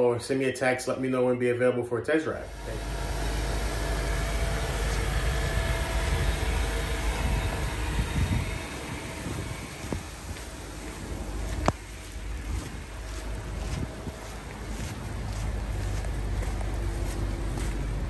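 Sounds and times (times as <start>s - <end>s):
wind noise on microphone: 3.6s - 18.0s.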